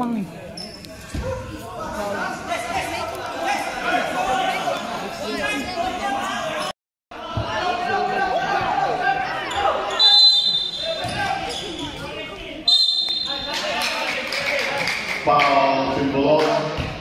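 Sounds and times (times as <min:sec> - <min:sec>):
players' voices: 0:00.0 - 0:16.9
referee's whistle blasts: 0:09.9 - 0:11.8, 0:12.7 - 0:13.5.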